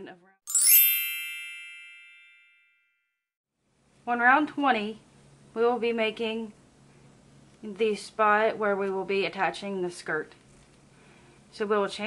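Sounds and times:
bright chime ding: 0.5 - 2.9.

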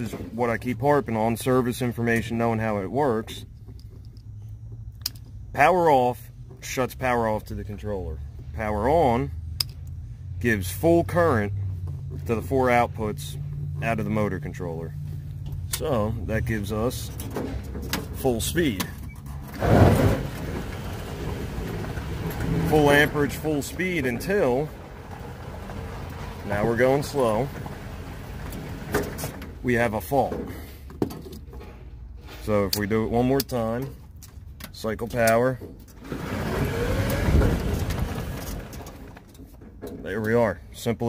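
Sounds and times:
low rumble of drivetrain: 0.0 - 41.0
electric utility vehicle driving: 19.3 - 29.6, 36.0 - 39.4
electric motor whine: 36.1 - 38.3.

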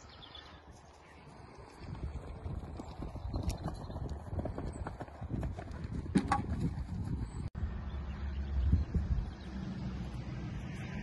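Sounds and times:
horse hoofbeats on grass: 1.6 - 7.4.

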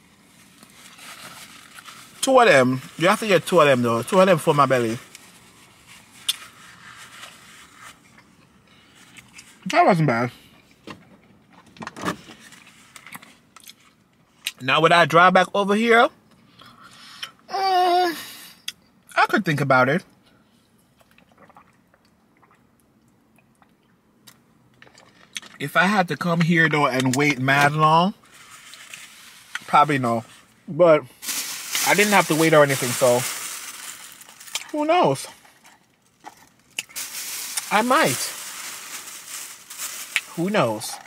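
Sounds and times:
plastic bag crinkling: 0.3 - 8.0, 31.1 - 41.0.

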